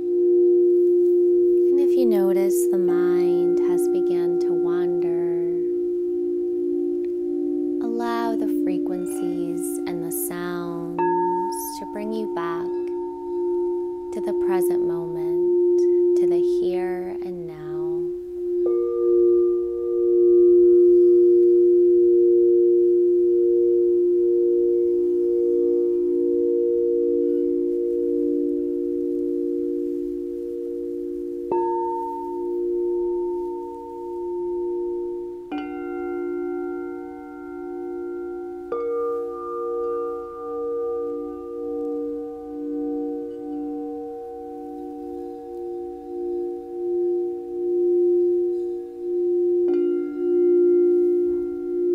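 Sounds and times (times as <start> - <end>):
singing bowls ringing: 0.0 - 51.9
mallet striking bowl: 3.1 - 16.2, 17.2 - 51.9.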